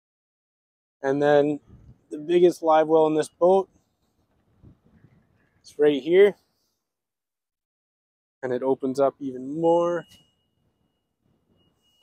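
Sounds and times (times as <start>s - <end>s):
faint high-pitched tone: 9.4s - 12.0s.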